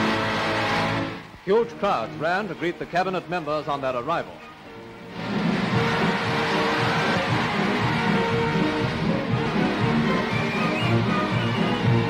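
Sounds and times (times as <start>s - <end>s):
newsreel soundtrack music: 0.0s - 12.0s.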